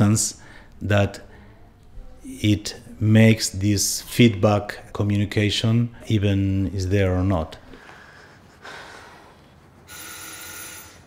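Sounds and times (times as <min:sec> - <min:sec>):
telephone bell ringing: 0:09.9 - 0:11.0.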